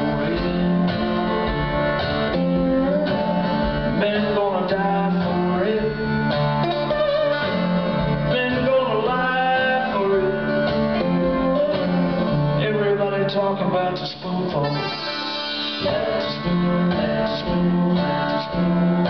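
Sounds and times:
slide string instrument blues riff: 0.0 - 19.0.

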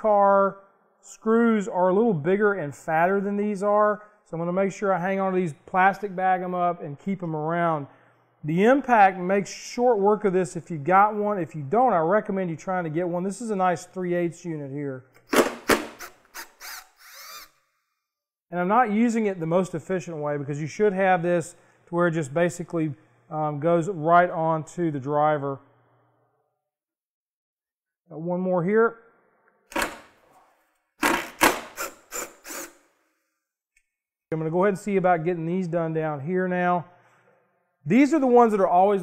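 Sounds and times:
impact wrench rattling: 15.2 - 17.5, 31.0 - 32.9.

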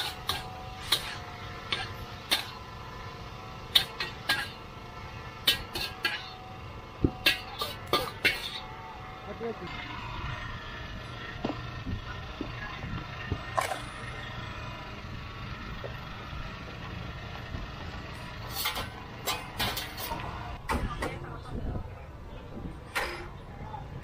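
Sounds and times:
steady low rumble: 8.6 - 24.0.

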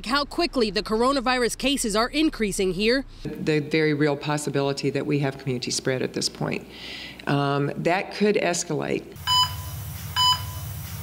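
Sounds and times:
low steady hum: 0.0 - 7.8
heart monitor beeps: 9.3 - 10.8.

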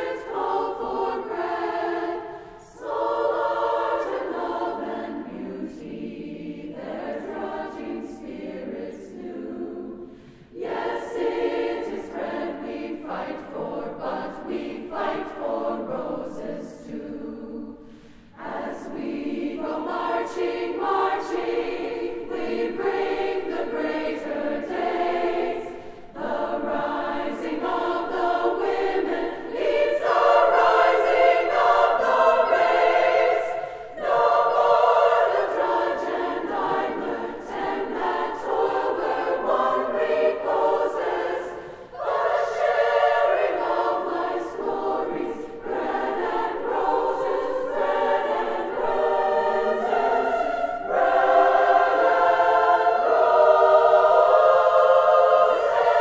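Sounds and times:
women's choir singing: 0.0 - 56.0.

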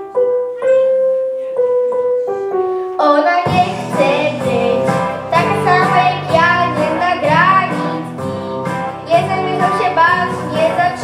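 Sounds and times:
instrumental accompaniment: 0.0 - 11.0
girl singing pop song: 2.9 - 8.3, 8.9 - 11.0.

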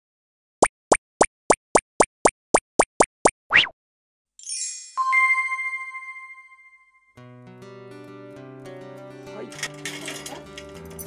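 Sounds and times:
cartoon pop plops: 0.6 - 3.8.

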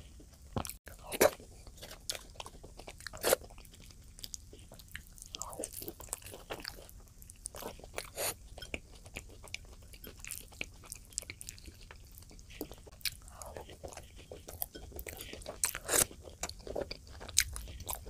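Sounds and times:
wet chewing and mouth clicks: 0.2 - 18.0.

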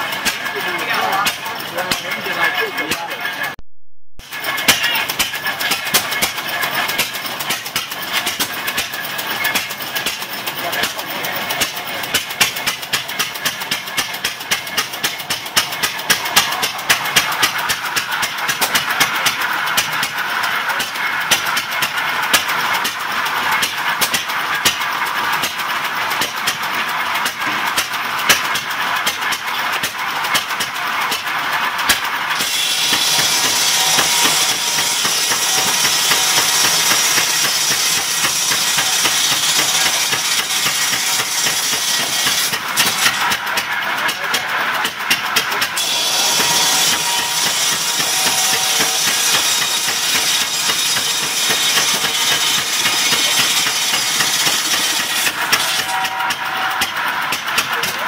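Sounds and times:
circular saw cutting log: 0.0 - 3.6, 4.2 - 58.0
stationary gas engine putt-putt: 0.0 - 3.6, 4.2 - 58.0.

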